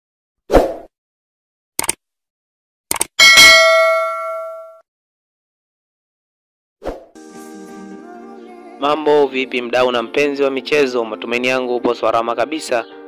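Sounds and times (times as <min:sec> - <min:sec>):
quick clicks: 0:01.8 - 0:02.0, 0:02.9 - 0:03.1
bright bell ding: 0:03.2 - 0:04.8.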